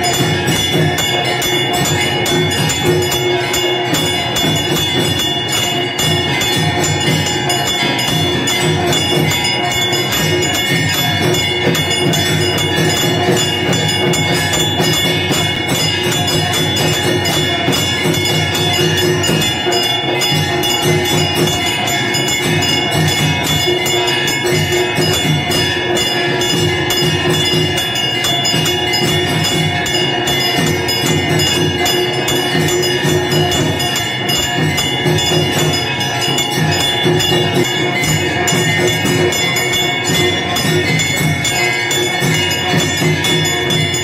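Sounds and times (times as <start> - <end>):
rhythmic percussion beat: 0.0 - 44.0
temple bells ringing: 0.0 - 44.0.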